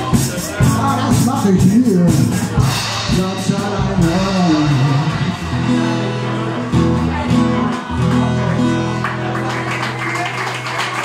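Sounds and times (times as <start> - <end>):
person singing: 0.0 - 8.5
strummed guitar: 0.0 - 10.0.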